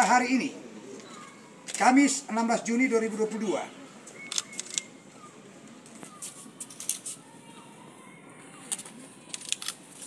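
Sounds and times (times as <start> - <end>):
camera shutter clicks: 4.2 - 4.9.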